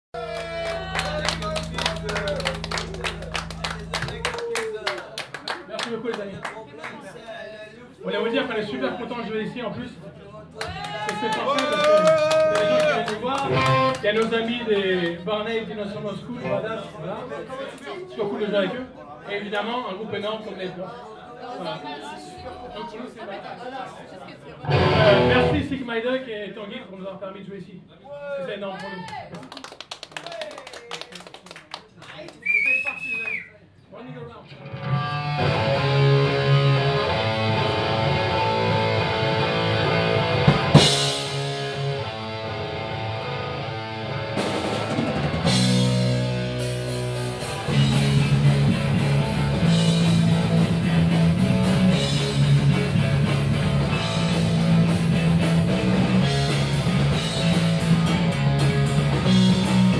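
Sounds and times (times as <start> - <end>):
low stage hum: 0.2 - 5.0
audience clapping: 0.2 - 7.2, 10.6 - 15.2, 28.8 - 33.4.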